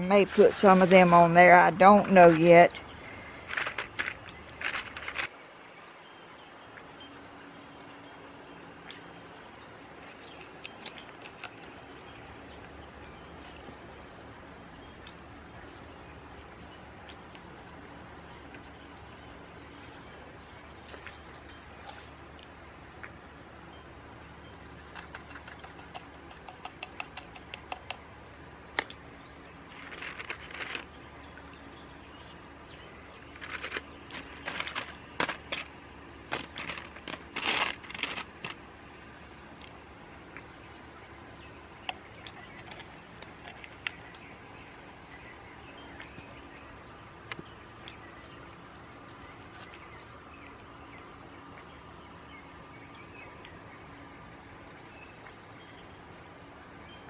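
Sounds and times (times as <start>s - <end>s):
glass and stones clicking: 3.4s - 5.3s
plastic gloves rustling: 36.3s - 38.7s.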